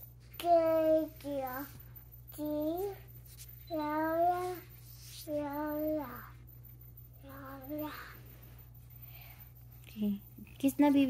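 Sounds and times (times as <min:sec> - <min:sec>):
girl singing a lullaby: 0:00.4 - 0:03.1, 0:03.7 - 0:06.6, 0:07.2 - 0:08.4.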